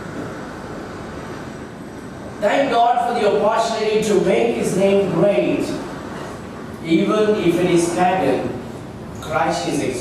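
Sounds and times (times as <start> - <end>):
room rumble and hiss: 0.0 - 10.0.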